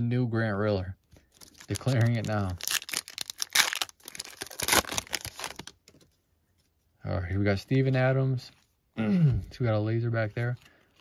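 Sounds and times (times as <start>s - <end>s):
wrapper tearing and crinkling: 1.3s - 5.8s.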